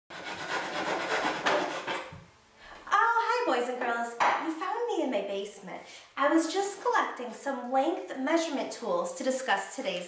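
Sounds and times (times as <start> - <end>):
hand saw rasping through wood: 0.1 - 2.1.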